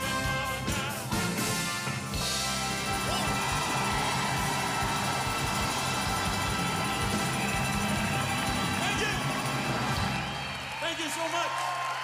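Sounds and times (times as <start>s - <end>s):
band and orchestra playing: 0.0s - 10.2s.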